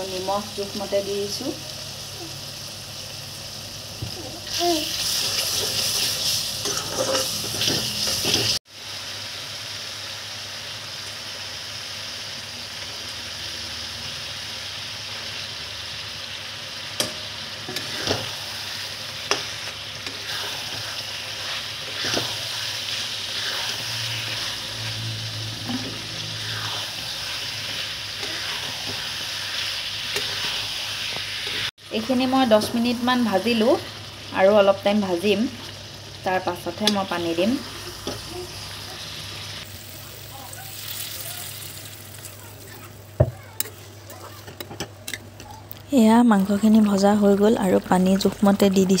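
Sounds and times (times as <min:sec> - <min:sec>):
food sizzling in hot oil: 0:00.0 - 0:49.0
metal spatula stirring: 0:05.1 - 0:08.6, 0:19.3 - 0:25.0, 0:25.6 - 0:31.7.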